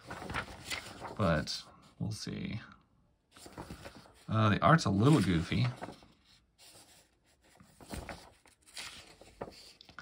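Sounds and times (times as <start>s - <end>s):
paper pages rustling: 0.0s - 1.8s, 3.3s - 10.0s.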